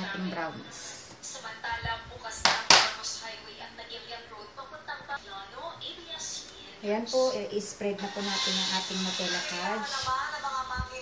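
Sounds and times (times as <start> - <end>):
metal pan knocking on table: 2.5 - 2.9.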